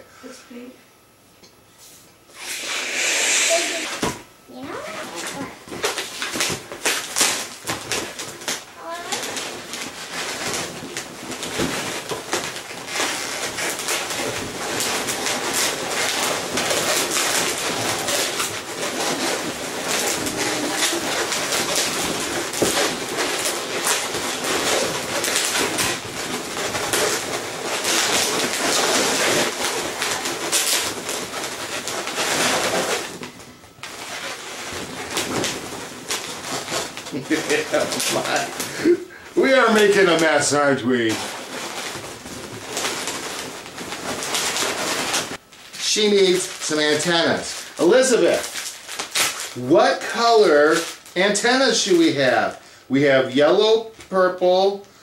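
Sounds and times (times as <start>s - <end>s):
balloons squeaking and rubbing: 2.3s - 52.6s.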